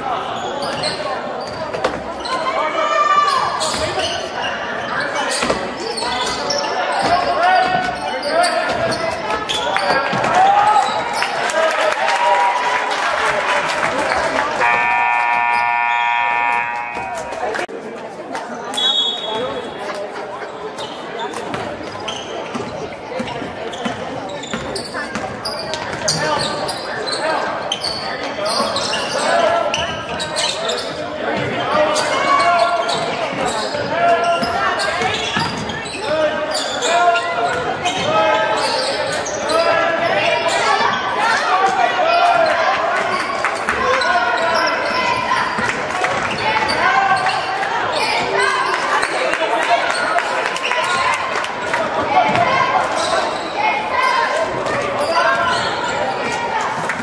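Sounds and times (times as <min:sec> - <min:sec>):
players and spectators calling out: 0:00.0 - 0:57.0.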